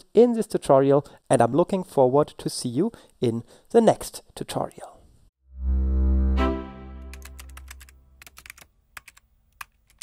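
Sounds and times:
deep synth swell: 5.4s - 7.4s
sharp typing-like clicks: 7.2s - 10.0s.

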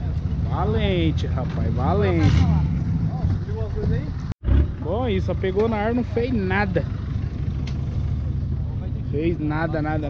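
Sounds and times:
people's voices: 0.0s - 4.2s
off-road engine rumble: 0.0s - 10.0s.

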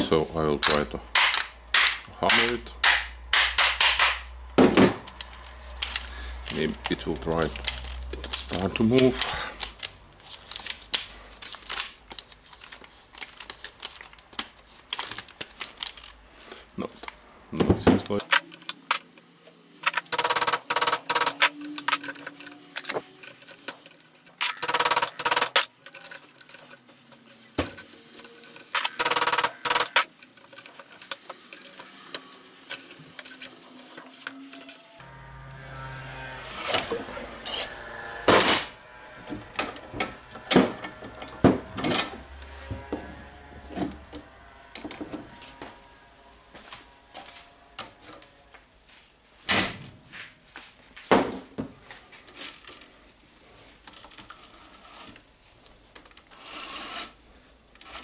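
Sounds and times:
metal tools clinking on steel vise: 18.2s - 19.2s, 19.8s - 34.8s.

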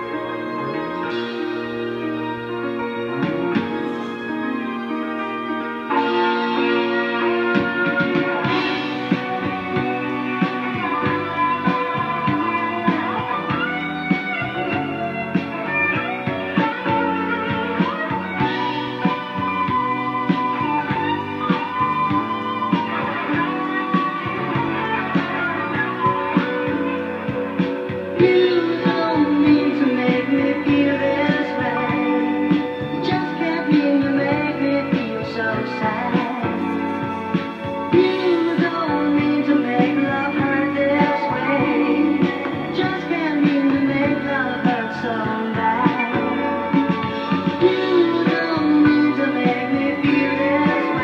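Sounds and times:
instrumental rock music: 0.0s - 51.0s.

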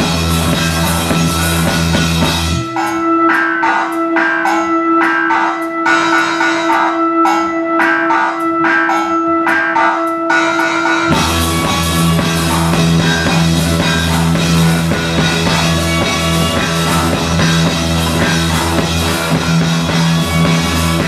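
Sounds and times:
drum and cymbal hits: 0.0s - 21.0s
instrumental rock band: 0.0s - 21.0s.

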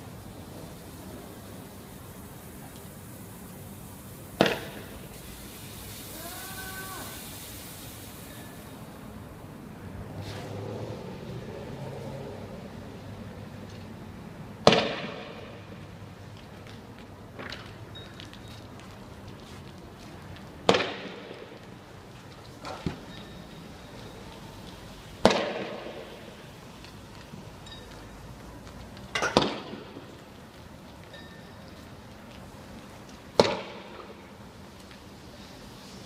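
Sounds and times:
sharp cracks of gunfire echoing: 25.2s - 26.2s.

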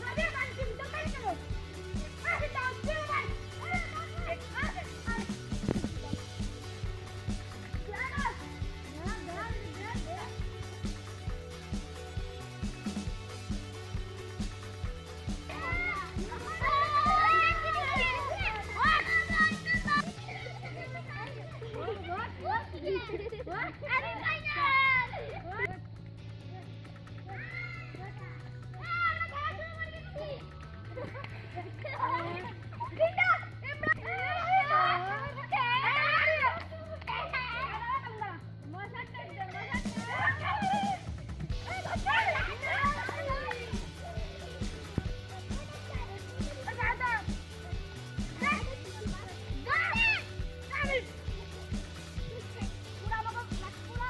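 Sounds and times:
background music with low notes: 0.0s - 54.0s
children shouting: 2.0s - 5.3s, 15.4s - 25.7s, 27.2s - 31.2s, 31.8s - 38.2s, 39.5s - 54.0s.

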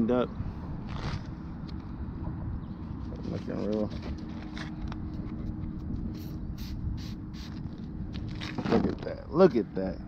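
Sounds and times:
spray bottle hissing sprays: 6.1s - 7.6s.

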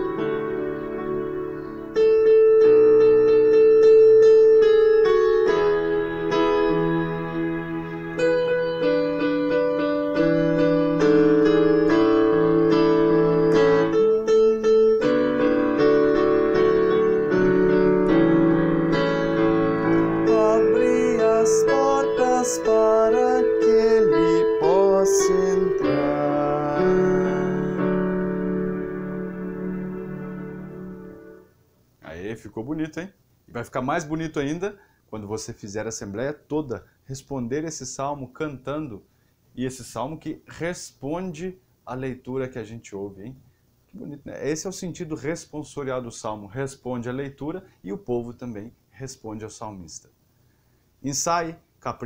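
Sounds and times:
electronic keyboard playing chords: 0.0s - 31.7s.

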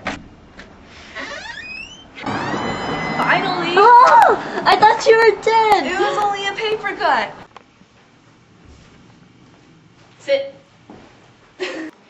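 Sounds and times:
door hinge squeaking: 1.2s - 4.1s.

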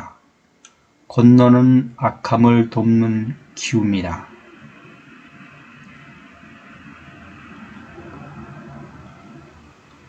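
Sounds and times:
low background rumble: 1.1s - 10.0s.

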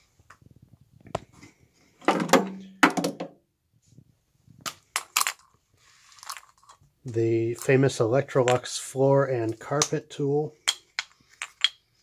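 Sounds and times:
vacuum tools knocking on hard floor: 2.0s - 3.4s.

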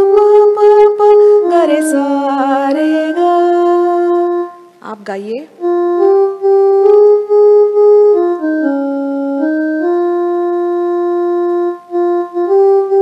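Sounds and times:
electronic keyboard melody: 0.0s - 13.0s.

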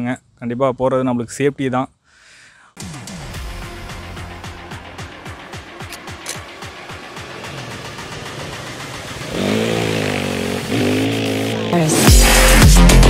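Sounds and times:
intro music: 2.8s - 13.0s
motorcycle engine revving: 5.9s - 13.0s.

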